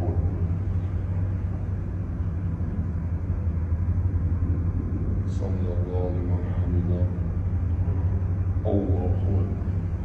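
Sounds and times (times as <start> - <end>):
constant low hum: 0.0 - 10.0
low rumble: 0.0 - 10.0.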